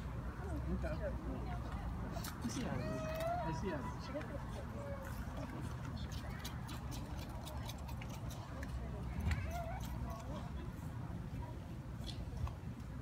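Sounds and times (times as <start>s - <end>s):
distant chatter: 0.0s - 13.0s.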